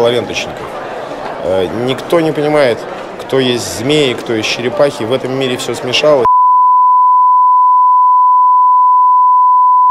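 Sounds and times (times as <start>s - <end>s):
steady test tone beep: 6.3s - 9.9s.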